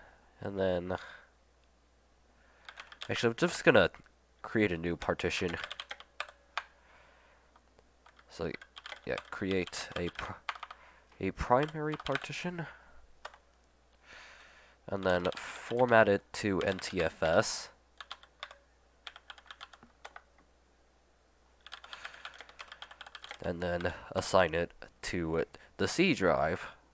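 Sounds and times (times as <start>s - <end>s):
soft hiss: 0.0s - 5.5s, 12.2s - 16.4s
computer keyboard keystrokes: 2.6s - 3.2s, 5.5s - 6.7s, 8.0s - 10.8s, 11.6s - 12.3s, 13.2s - 13.4s, 15.0s - 16.0s, 16.6s - 17.4s, 18.0s - 20.3s, 21.6s - 23.9s.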